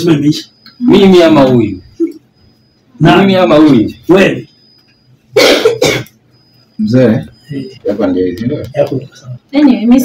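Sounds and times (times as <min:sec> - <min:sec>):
man coughing: 0:05.4 - 0:06.2.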